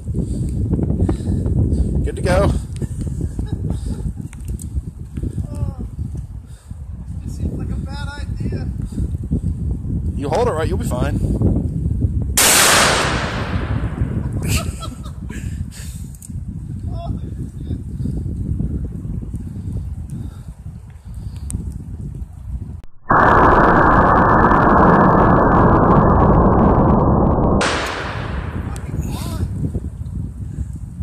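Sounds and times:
loud rushing noise: 12.4s - 14.3s, 22.8s - 29.5s.

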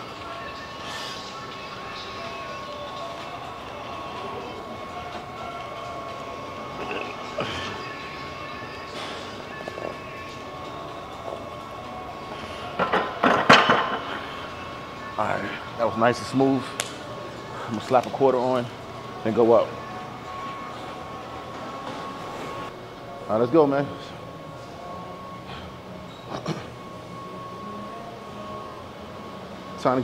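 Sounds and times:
gym background hum: 0.0s - 30.0s.

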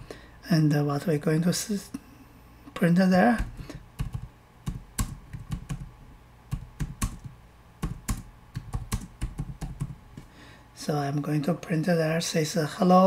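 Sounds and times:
typing on computer keyboard: 4.0s - 5.9s, 6.5s - 10.0s.

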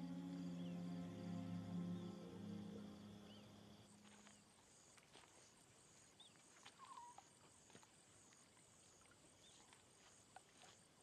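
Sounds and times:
low musical tone: 0.0s - 4.4s
faint birds chirping: 0.0s - 7.7s.

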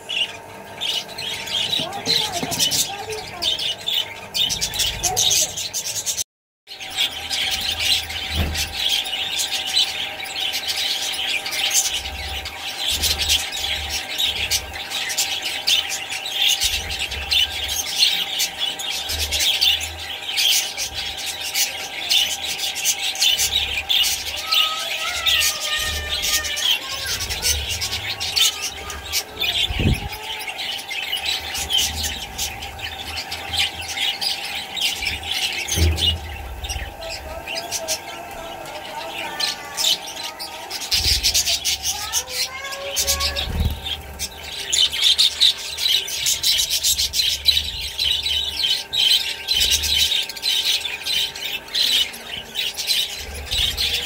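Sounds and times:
budgerigars chattering: 0.0s - 54.0s.

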